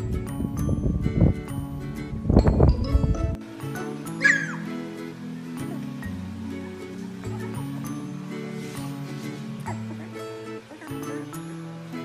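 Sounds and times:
background music: 0.0s - 12.0s
puppy whimpering: 4.2s - 4.6s.

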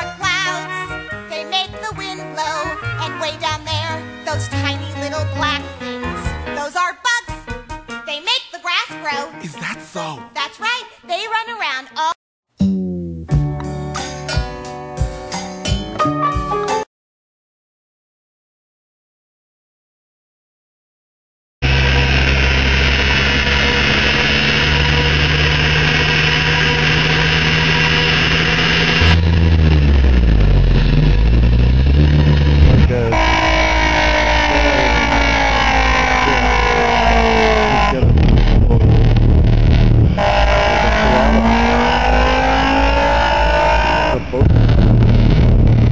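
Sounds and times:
low synthesizer drones: 21.6s - 45.9s
synthesizer tones sliding downward: 21.6s - 45.9s.

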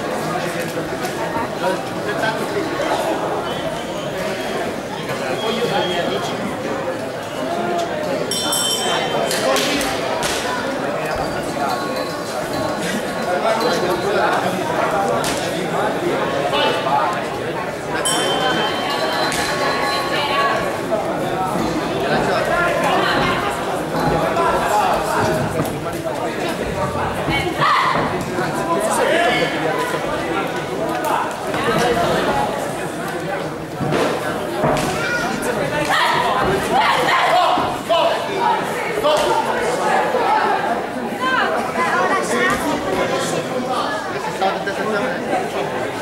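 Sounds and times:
people chattering and calling: 0.0s - 46.0s
ring bell ding: 8.3s - 9.2s, 18.0s - 20.0s.

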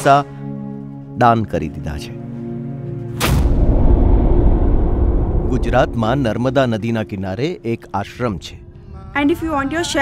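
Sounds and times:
cinematic impact hit: 3.2s - 6.6s
deep low rumble: 3.4s - 6.7s.

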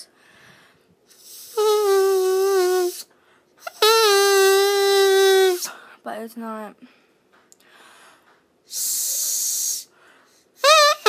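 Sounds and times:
breathy hiss: 7.6s - 10.6s.

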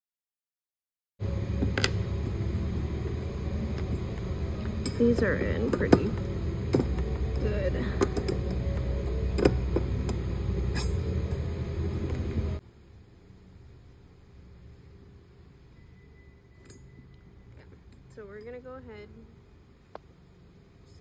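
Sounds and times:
loud low rumble: 1.2s - 12.6s.

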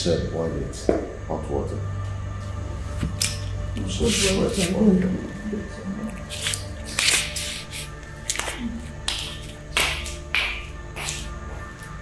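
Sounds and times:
background music with low notes: 0.0s - 12.0s
slippers slapping on tiled floor: 6.2s - 12.0s.

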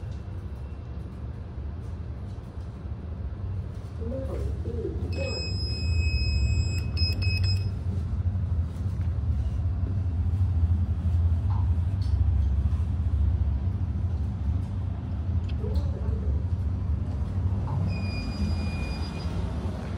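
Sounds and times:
lift low rumble: 0.0s - 19.9s
high electronic beep tone: 17.9s - 19.4s.

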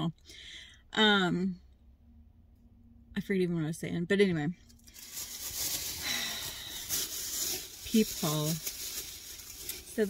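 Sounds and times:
shopping bags rustling: 4.9s - 10.0s.

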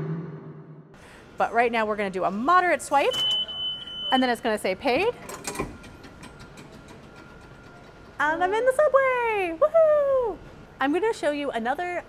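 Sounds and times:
turnstile ratcheting clatter: 4.9s - 8.8s.

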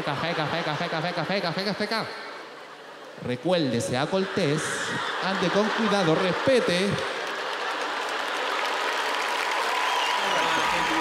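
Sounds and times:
audience laughing: 0.0s - 9.1s
audience applauding: 5.0s - 11.0s.

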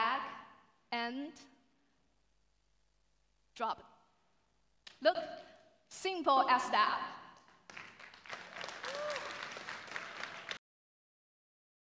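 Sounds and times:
applause: 7.4s - 10.6s.

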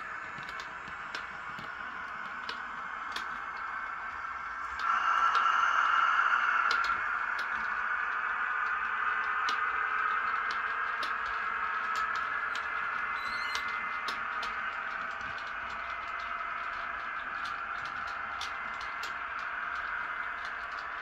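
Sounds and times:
wheels clicking over rail joints: 0.0s - 4.9s, 6.7s - 21.0s
model train whine: 0.0s - 21.0s.

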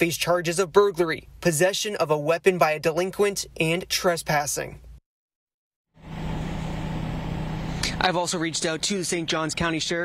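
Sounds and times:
low mechanical hum: 6.0s - 9.3s.

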